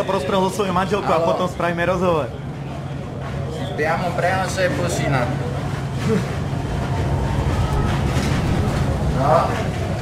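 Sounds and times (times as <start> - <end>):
low background rumble: 4.6 - 10.0.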